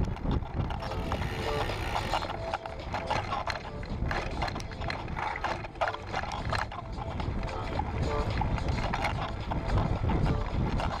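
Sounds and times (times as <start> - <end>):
bicycle clicks and rattles: 0.0 - 11.0
wind buffeting microphone: 0.0 - 11.0.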